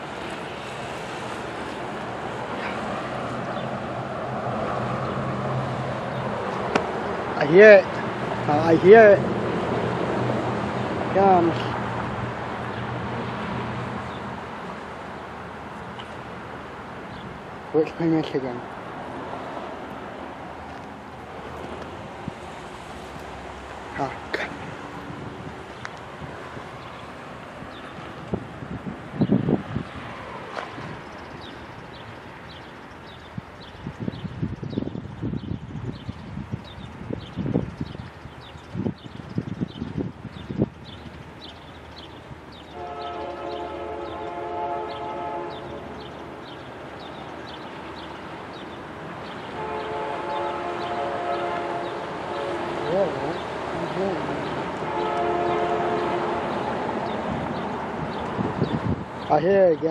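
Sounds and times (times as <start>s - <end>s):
wind rumbling on microphone: 18.7s - 59.9s
distant diesel locomotive horn: 42.7s - 46.0s, 49.5s - 57.2s.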